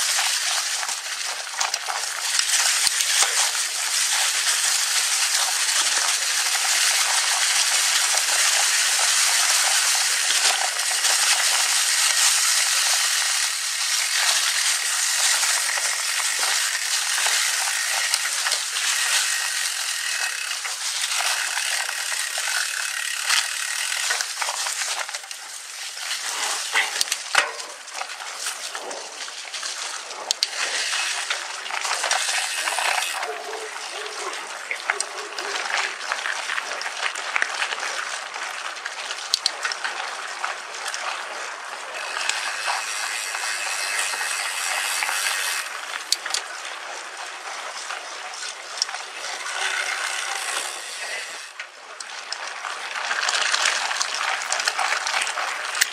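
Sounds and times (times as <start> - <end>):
bike clicks and rattles: 0.0 - 55.9
bike tyres rushing over dirt: 0.0 - 55.9.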